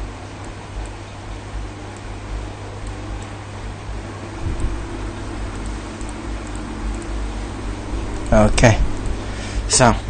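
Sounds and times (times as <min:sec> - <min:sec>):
low hum: 0:00.0 - 0:10.0
steady background hiss: 0:00.0 - 0:10.0.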